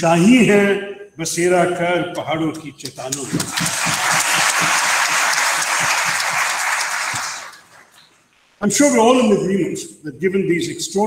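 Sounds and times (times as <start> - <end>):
audience applause: 3.1 - 8.1.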